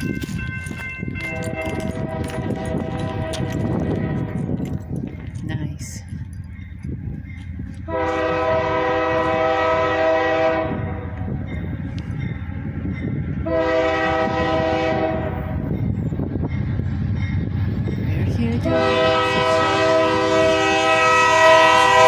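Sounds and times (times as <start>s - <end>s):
train rumble: 0.0s - 22.0s
locomotive air horn blasts: 1.3s - 4.4s, 7.9s - 11.2s, 13.4s - 15.5s, 18.6s - 22.0s.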